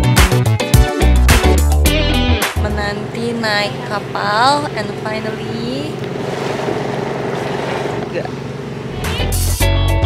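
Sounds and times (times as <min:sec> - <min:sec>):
surf: 0:02.4 - 0:10.0
boat motor droning: 0:02.6 - 0:10.0
wind: 0:02.8 - 0:09.3.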